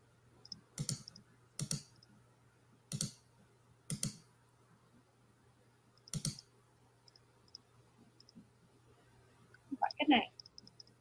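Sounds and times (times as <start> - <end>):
computer mouse clicks: 0.4 - 2.1, 2.9 - 3.2, 3.9 - 4.3, 6.0 - 6.5, 10.4 - 11.0.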